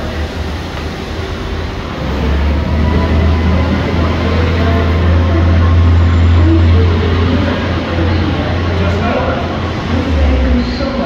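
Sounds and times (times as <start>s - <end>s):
idling vehicles rumbling: 0.0s - 11.0s.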